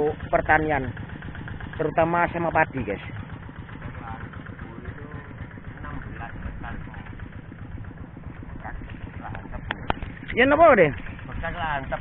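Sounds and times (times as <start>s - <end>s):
steady low rumble: 3.1s - 12.0s.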